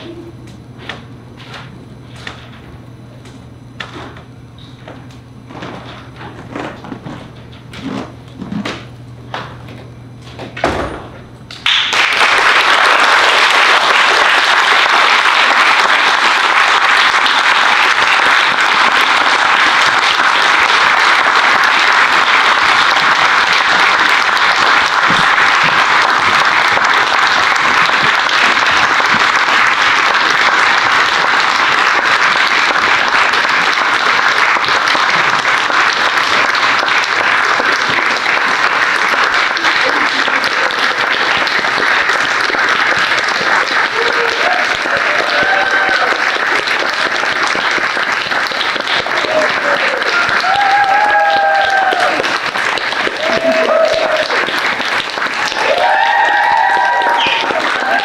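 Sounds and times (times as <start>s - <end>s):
audience applauding: 11.5s - 58.0s
voices rising over clapping: 11.5s - 58.0s.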